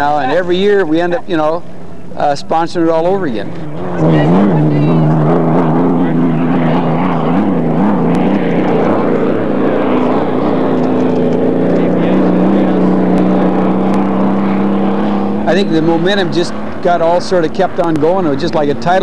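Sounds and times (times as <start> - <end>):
racing boat engine drone: 0.0 - 19.0.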